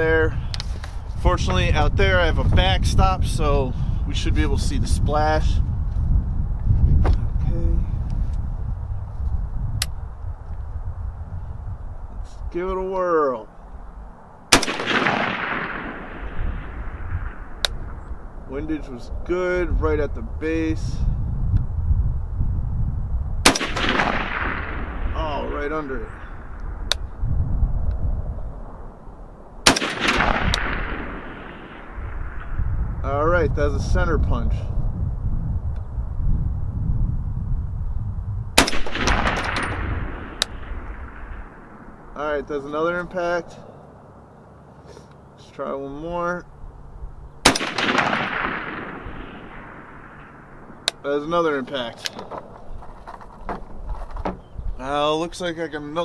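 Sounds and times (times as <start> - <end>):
wind rumble on microphone: 0.0 - 43.7, 45.8 - 56.0
rifle shot echoing: 14.5 - 18.3, 23.4 - 27.2, 29.6 - 33.0, 38.6 - 42.2, 47.4 - 51.1
sharp click: 17.6 - 17.8, 26.6 - 27.1, 40.4 - 40.6.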